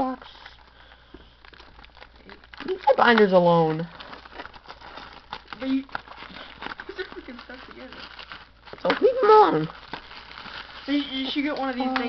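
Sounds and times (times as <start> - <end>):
plastic shrink wrap crinkling: 0.0 - 12.0.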